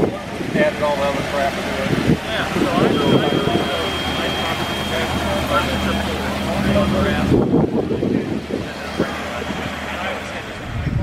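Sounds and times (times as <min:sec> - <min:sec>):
car engine idling: 0:00.0 - 0:11.0
people's voices: 0:00.0 - 0:11.0.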